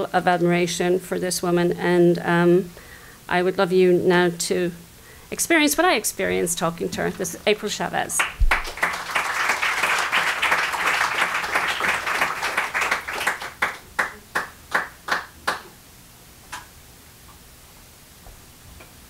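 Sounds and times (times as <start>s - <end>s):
audience applauding: 8.2s - 15.7s.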